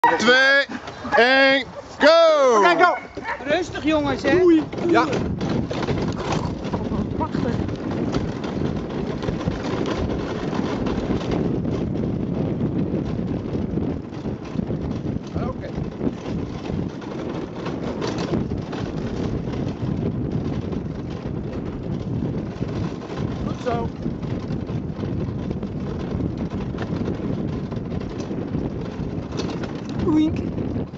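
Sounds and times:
rig rumbling on dirt trail: 0.0s - 30.9s
wind rushing over microphone: 0.0s - 30.9s.

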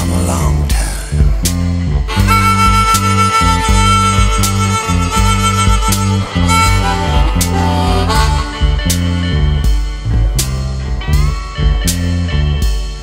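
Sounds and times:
long held lead guitar note: 0.0s - 9.7s
repeating bass line: 0.0s - 12.7s
drums: 0.0s - 13.0s.

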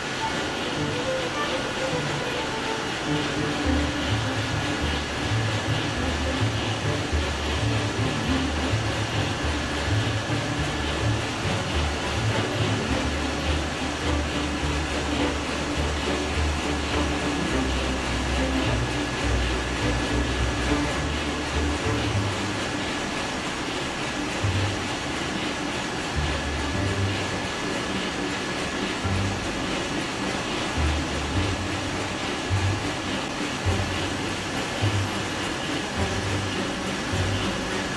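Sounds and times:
diesel engine din: 0.0s - 23.4s, 24.1s - 37.9s.

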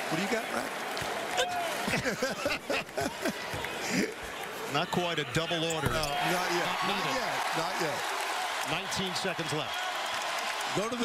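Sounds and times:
men laughing: 1.8s - 4.3s.

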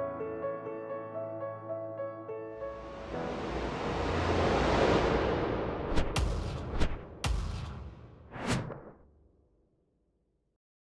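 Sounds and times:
rising whoosh riser: 2.7s - 9.1s.

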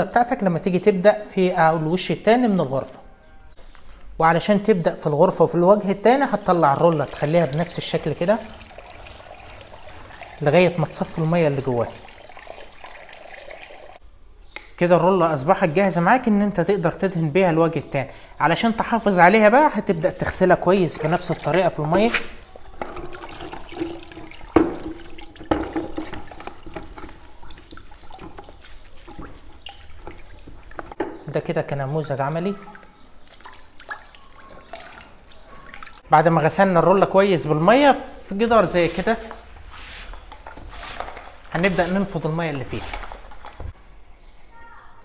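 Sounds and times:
paint roller sloshing in water: 6.3s - 14.0s, 20.6s - 31.0s, 38.6s - 43.7s
paint roller shaken out: 38.6s - 43.7s.

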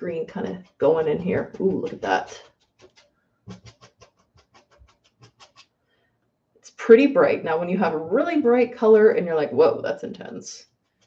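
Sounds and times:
woman's voice: 0.0s - 2.4s, 6.7s - 10.6s
paintbrush tapping on canvas: 0.4s - 5.7s.

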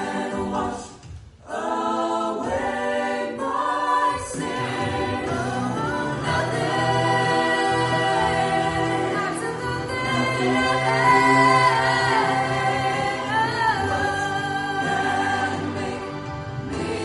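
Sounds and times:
mixed choir singing a worship song: 0.0s - 17.0s.

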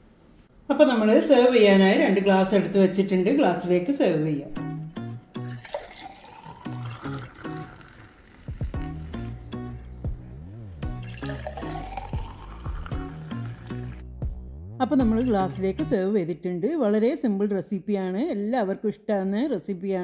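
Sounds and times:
background music with steady beat: 4.4s - 5.7s, 8.4s - 16.0s
drink pouring into glass: 5.3s - 9.3s, 10.9s - 14.0s.

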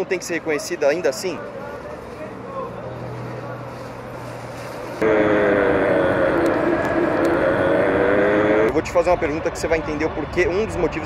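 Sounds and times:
low street hum: 0.0s - 11.0s
street traffic engine drone: 0.0s - 11.0s.

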